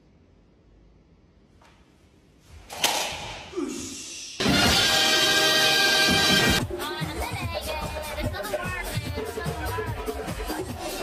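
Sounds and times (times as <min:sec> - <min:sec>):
loud music: 0:04.4 - 0:11.0
dance music with voices: 0:06.1 - 0:11.0.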